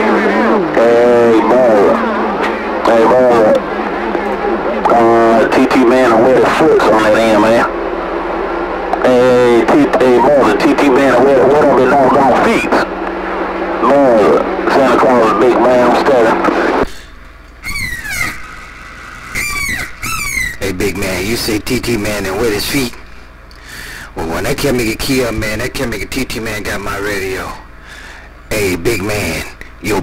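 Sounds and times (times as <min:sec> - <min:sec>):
garbled voice over radio speaker: 0:00.0 - 0:07.7, 0:09.0 - 0:13.0, 0:13.8 - 0:16.9, 0:28.5 - 0:30.0
steady radio hum: 0:00.0 - 0:17.4, 0:19.4 - 0:30.0.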